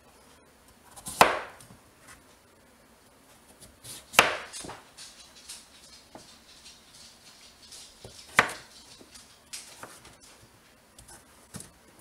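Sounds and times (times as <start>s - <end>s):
knife chopping on cutting board: 0.9s - 1.6s, 3.8s - 4.8s, 8.0s - 8.8s.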